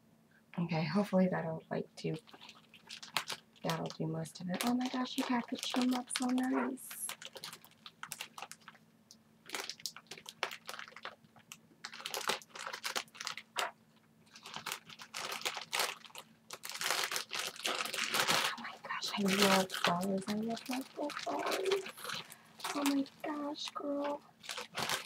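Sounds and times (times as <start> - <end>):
faint steady hum: 0.0 - 25.0
packaging rustling and crinkling: 2.2 - 8.8, 9.4 - 25.0.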